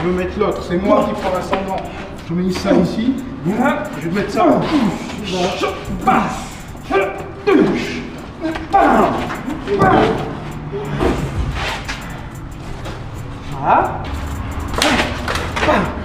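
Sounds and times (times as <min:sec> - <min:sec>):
people shouting: 0:03.5 - 0:11.8, 0:13.5 - 0:16.0.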